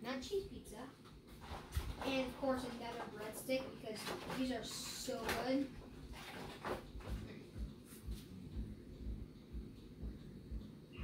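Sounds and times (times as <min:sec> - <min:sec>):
soft footsteps on floor: 0:05.2 - 0:10.6.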